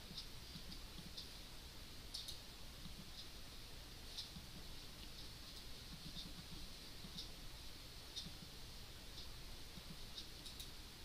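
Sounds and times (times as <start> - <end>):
computer mouse clicks: 2.1 - 3.3, 9.2 - 10.8.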